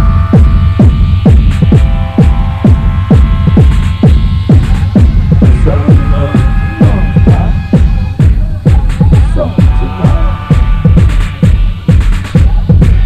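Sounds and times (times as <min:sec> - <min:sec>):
heavy bass line: 0:00.0 - 0:13.0
held synth chord: 0:00.0 - 0:13.0
light hi-hats: 0:00.0 - 0:13.0
techno kick drum: 0:00.0 - 0:13.0.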